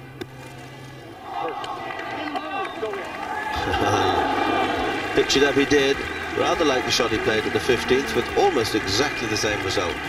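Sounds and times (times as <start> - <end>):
crowd cheering and shouting: 1.1 - 10.0.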